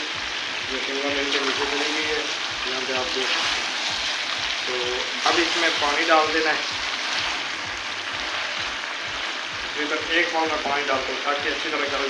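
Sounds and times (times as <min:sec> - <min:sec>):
vegetables sizzling in pot: 0:00.0 - 0:12.0.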